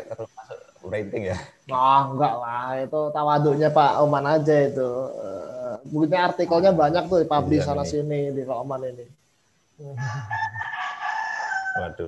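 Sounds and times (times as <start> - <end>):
rooster crowing: 10.0 - 12.0.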